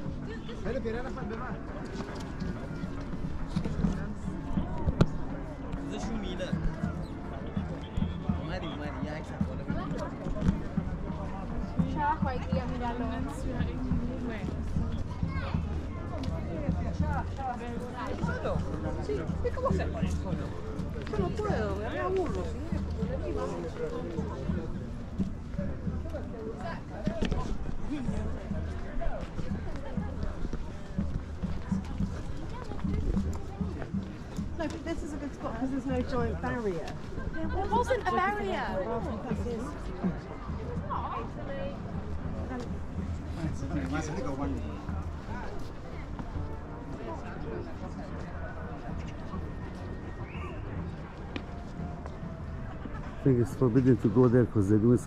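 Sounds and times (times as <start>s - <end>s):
footsteps on stone path: 0.0s - 8.4s, 9.3s - 55.0s
voices chattering: 0.0s - 55.0s.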